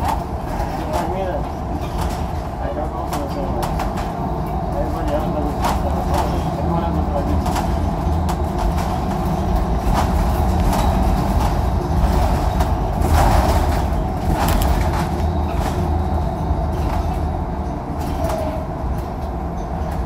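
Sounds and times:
interior panels rattling: 0:00.0 - 0:18.6
bus drivetrain and road rumble: 0:00.0 - 0:20.0.

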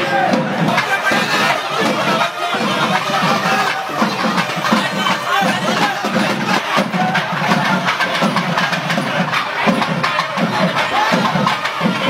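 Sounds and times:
crowd cheering: 0:00.0 - 0:12.0
low drum beats: 0:00.0 - 0:12.0.

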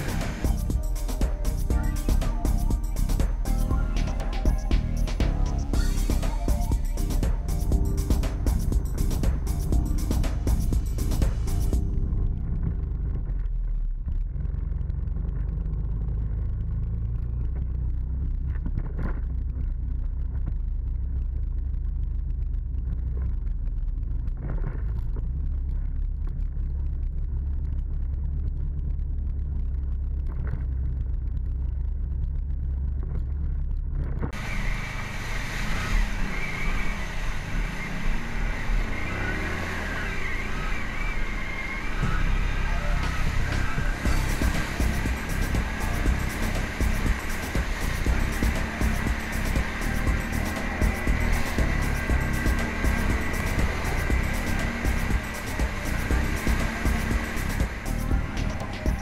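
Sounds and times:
atv engine rumble: 0:00.0 - 0:59.0.

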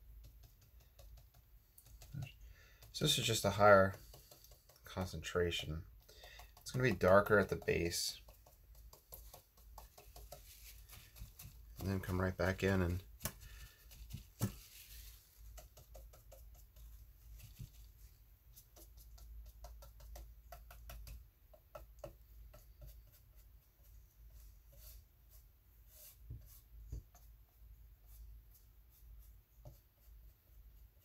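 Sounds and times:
small taps and clicks of tools: 0:00.0 - 0:17.9, 0:18.6 - 0:23.2
soft dabbing on paper: 0:00.0 - 0:31.0.

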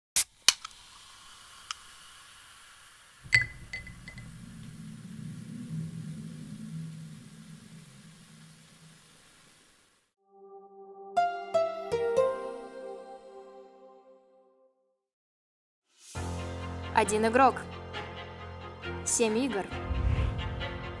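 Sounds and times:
faint hiss: 0:00.2 - 0:10.2
low hum: 0:03.3 - 0:09.8.

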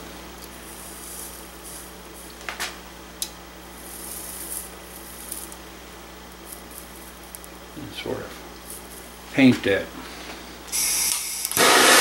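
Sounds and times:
low electrical hum: 0:00.0 - 0:12.0
soldering hiss: 0:10.7 - 0:12.0.

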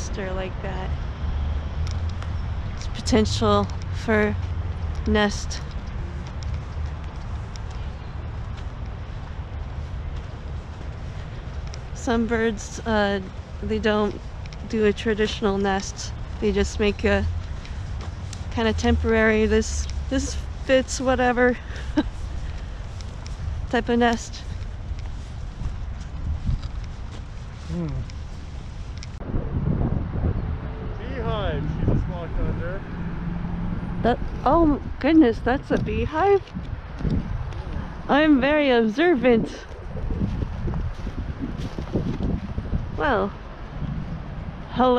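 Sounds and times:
wind buffeting microphone: 0:00.0 - 0:44.9
low rumble: 0:22.0 - 0:44.8.

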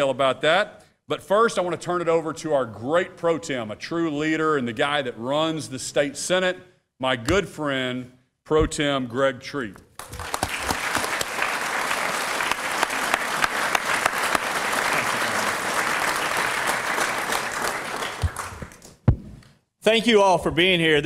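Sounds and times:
loud thump: 0:08.6 - 0:08.8, 0:19.1 - 0:19.4
audience applauding: 0:10.0 - 0:19.0.

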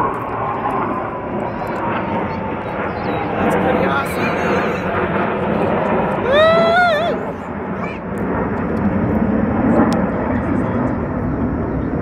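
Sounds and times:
jet engines flying over: 0:00.0 - 0:12.0.

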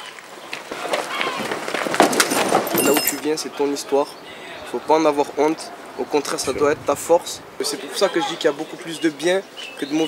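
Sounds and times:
quick footsteps on asphalt: 0:00.0 - 0:02.8
people scuffling: 0:00.0 - 0:09.9
raised voices: 0:02.8 - 0:09.2.

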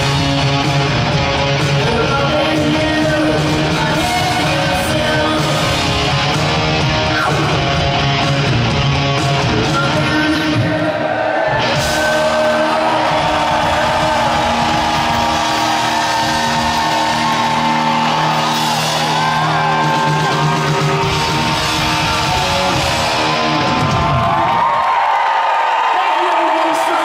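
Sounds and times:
live rock band playing: 0:00.0 - 0:24.7
crowd whooping: 0:10.6 - 0:27.0.

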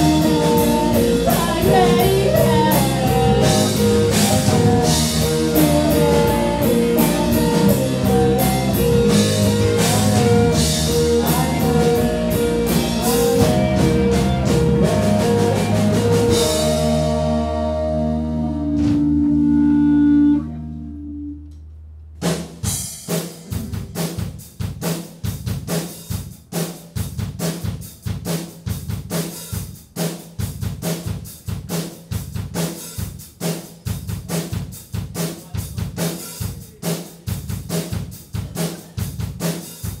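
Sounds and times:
drum kit beat: 0:00.0 - 0:20.5, 0:22.1 - 0:40.0
rock band held chord: 0:00.0 - 0:20.9.

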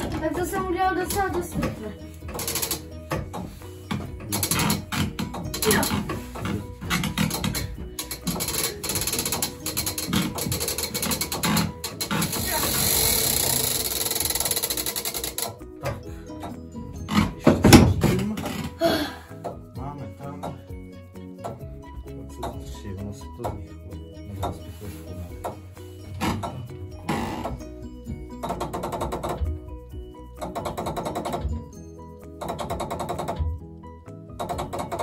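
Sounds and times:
clock winding mechanism whirring: 0:00.0 - 0:03.2, 0:03.9 - 0:15.7
ratchet clicking: 0:02.1 - 0:03.2, 0:03.9 - 0:15.6.

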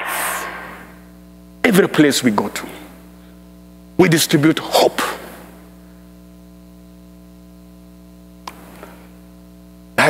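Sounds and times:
speech echoing in a large hall: 0:00.0 - 0:03.3, 0:04.0 - 0:05.7
steady electrical hum: 0:00.0 - 0:10.0.

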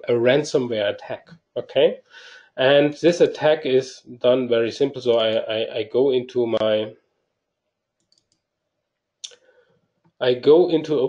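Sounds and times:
faint computer mouse clicks: 0:08.0 - 0:08.4.

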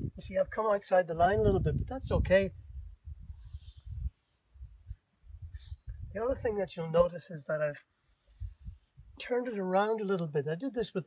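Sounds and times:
wind buffeting microphone: 0:00.0 - 0:00.6, 0:01.2 - 0:06.8, 0:08.4 - 0:09.2.

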